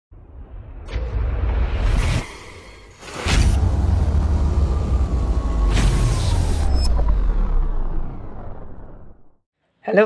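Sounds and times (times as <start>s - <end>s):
whoosh: 0.1s - 9.3s.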